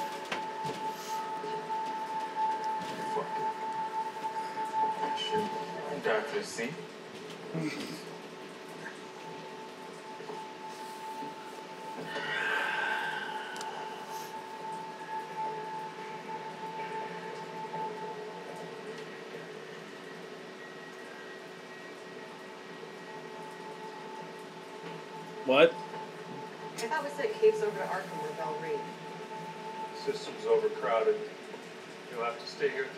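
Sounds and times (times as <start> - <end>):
sustained drone tones: 0.0 - 32.9.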